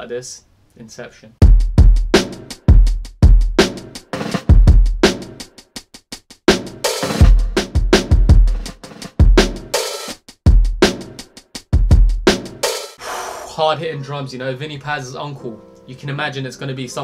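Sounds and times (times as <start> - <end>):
hip-hop kick drums: 1.4 - 5.4, 6.5 - 9.8, 10.4 - 12.6.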